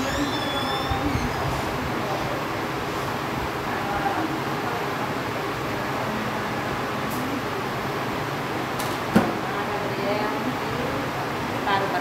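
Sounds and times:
air conditioner whooshing: 0.0s - 12.0s.

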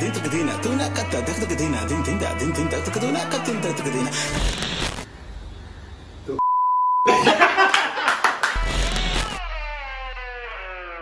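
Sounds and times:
glitchy clicking noise: 4.3s - 5.1s, 8.6s - 9.5s
high censor bleep: 6.4s - 7.1s.

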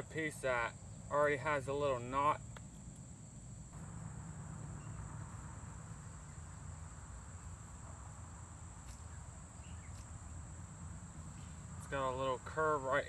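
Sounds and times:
crickets chirring: 0.0s - 13.0s.

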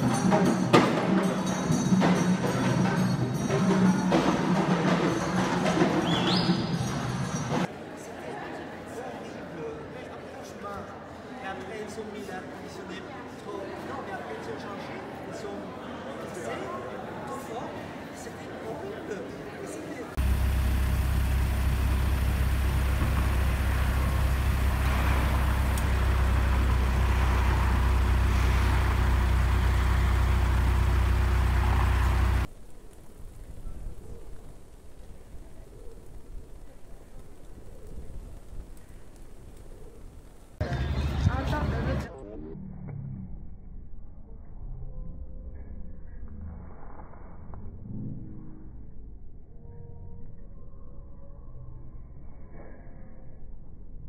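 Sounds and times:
street background noise: 0.0s - 42.3s
vehicle engine idling: 20.2s - 32.5s.

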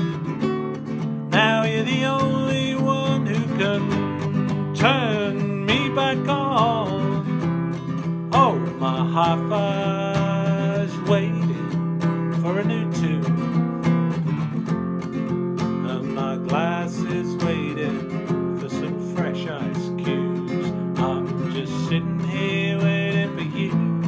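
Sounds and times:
acoustic guitar strummed: 0.0s - 24.0s.

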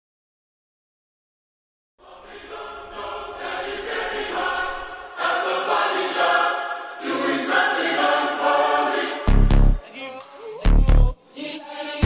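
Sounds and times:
choir-like pop vocals: 2.0s - 12.0s.

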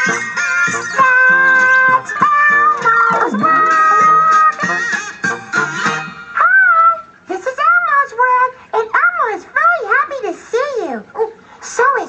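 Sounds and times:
high squeaky voice singing: 0.8s - 4.8s
theme music: 3.1s - 5.5s.

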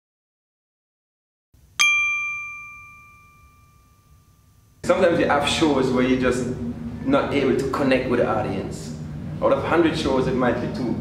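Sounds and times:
bright bell-like ding: 1.8s - 4.8s.

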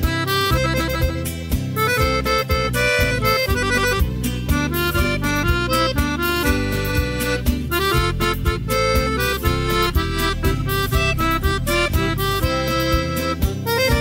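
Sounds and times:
accordion melody: 0.0s - 14.0s
steady bass beat: 0.0s - 14.0s.

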